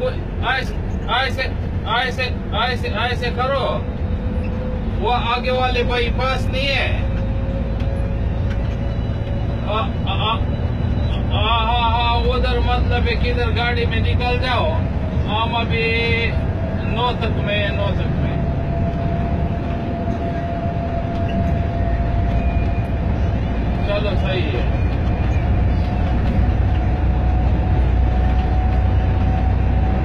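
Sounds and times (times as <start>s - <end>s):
coach engine drone: 0.0s - 30.0s
road noise: 0.0s - 30.0s.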